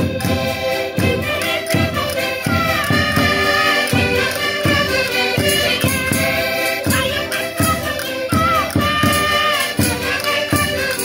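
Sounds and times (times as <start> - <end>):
button accordions playing folk tune: 0.0 - 11.0
drum beating: 0.0 - 11.0.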